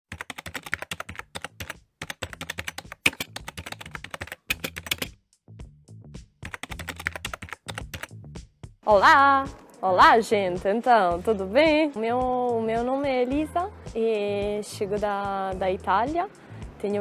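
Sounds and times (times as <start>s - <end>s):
keyboard typing clicks: 0.1s - 5.1s, 6.4s - 8.1s
soft background music: 0.2s - 5.2s, 6.4s - 17.0s.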